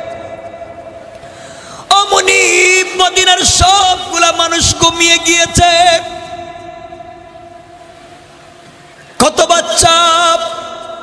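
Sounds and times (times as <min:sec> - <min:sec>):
faint steady ringing tones: 0:05.0 - 0:09.2.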